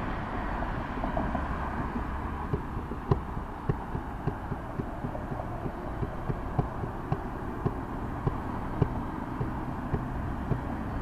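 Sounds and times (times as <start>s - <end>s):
steady low hum: 0.0s - 11.0s
faint sharp ticking: 1.8s - 11.0s.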